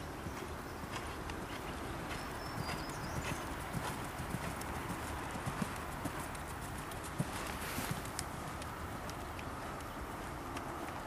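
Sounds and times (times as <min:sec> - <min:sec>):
steady background hiss: 0:00.0 - 0:11.0
horse hoofbeats on sand: 0:00.2 - 0:11.0.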